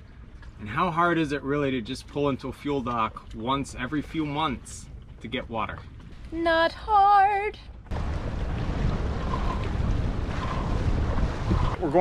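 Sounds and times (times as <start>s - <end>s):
water rushing past hull: 0.0s - 12.0s
wind buffeting microphone: 7.9s - 12.0s.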